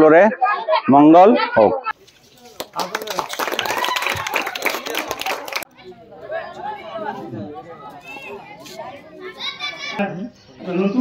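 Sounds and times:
group of people chattering: 0.0s - 11.0s.

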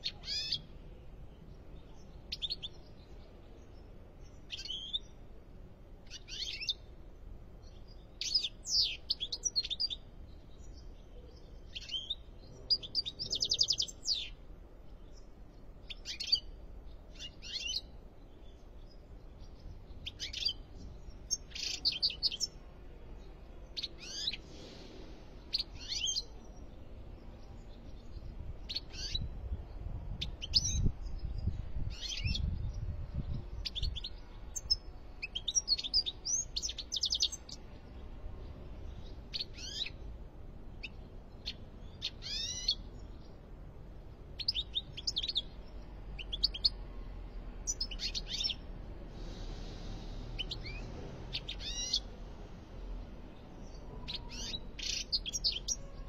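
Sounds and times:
goldfinch chirping and twittering: 19.4s - 22.6s, 27.6s - 29.2s, 40.8s - 43.3s, 47.6s - 48.6s, 49.7s - 52.1s, 54.1s - 56.0s.

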